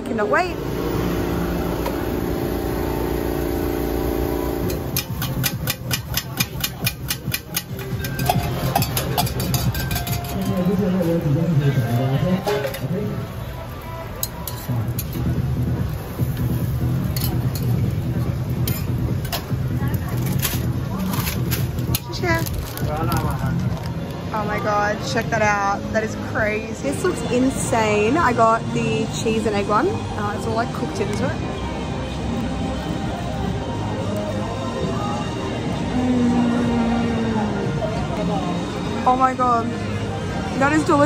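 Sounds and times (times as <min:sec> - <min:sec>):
people talking: 0:00.0 - 0:00.6, 0:19.5 - 0:21.2, 0:24.3 - 0:31.6, 0:34.8 - 0:39.9
metal utensils clicking on griddle: 0:04.6 - 0:11.2, 0:14.2 - 0:15.4, 0:17.0 - 0:17.8, 0:18.5 - 0:22.2
background music: 0:04.7 - 0:41.0.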